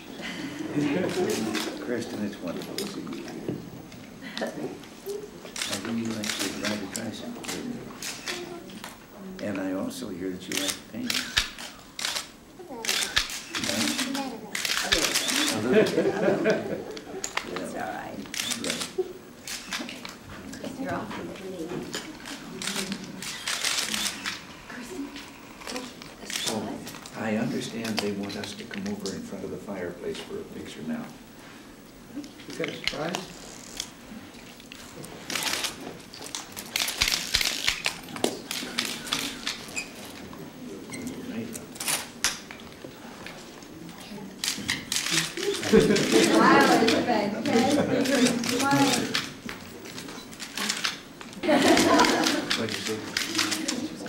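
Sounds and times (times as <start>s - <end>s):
camera shutters clicking: 1.0s - 1.8s, 5.5s - 9.0s, 10.4s - 15.9s, 17.2s - 20.2s, 21.9s - 24.6s, 25.2s - 27.1s, 32.4s - 40.3s, 44.4s - 54.0s
camera shutter clicks: 5.5s - 8.9s, 10.5s - 15.7s, 18.3s - 20.2s, 22.2s - 24.5s
quiet talk: 43.6s - 54.0s.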